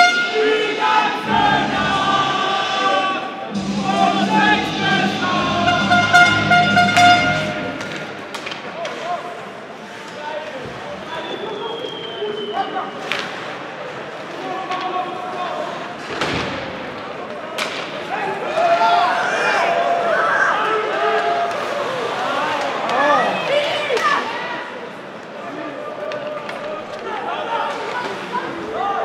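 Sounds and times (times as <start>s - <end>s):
crowd singing: 0.0s - 8.2s
crowd voices: 0.0s - 29.0s
puck and sticks knocking: 6.8s - 9.0s.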